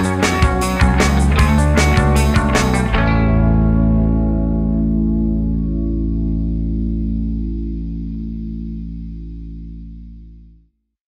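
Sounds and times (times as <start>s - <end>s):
distorted electric guitar chord: 0.0s - 10.4s.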